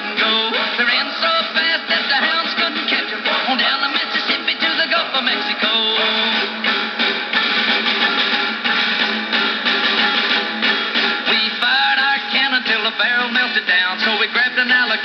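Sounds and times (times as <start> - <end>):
country song on small radio speaker: 0.0 - 15.0
person singing: 0.0 - 15.0.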